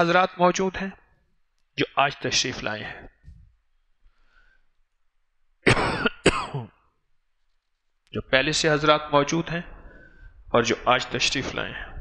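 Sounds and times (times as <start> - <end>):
man coughing: 5.6 - 6.8.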